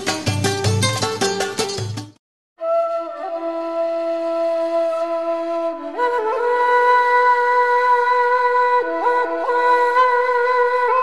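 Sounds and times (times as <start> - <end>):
solo flute playing long notes: 2.6 - 7.3.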